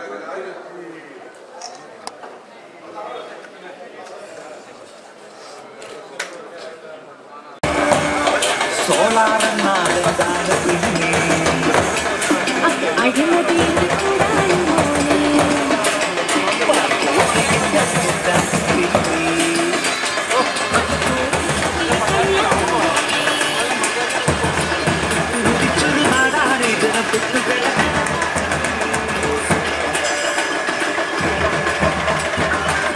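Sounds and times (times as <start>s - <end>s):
noisy street crowd: 0.0s - 32.9s
street band drums beating: 7.6s - 32.9s
vehicle engines idling and running: 7.6s - 32.9s.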